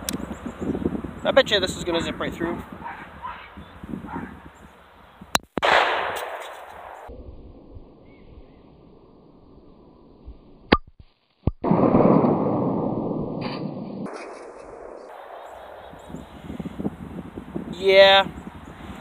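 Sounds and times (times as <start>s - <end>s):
pistol gunshots: 5.6s - 7.1s.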